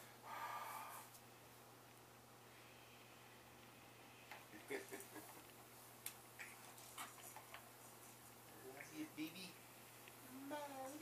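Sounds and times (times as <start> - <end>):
soft vocal sound: 10.1 - 11.0.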